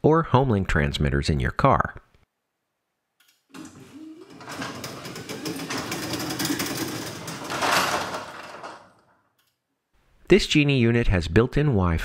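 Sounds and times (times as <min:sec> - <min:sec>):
garage door opener motor running: 0:03.5 - 0:09.1
door rollers rattling on tracks: 0:03.6 - 0:09.1.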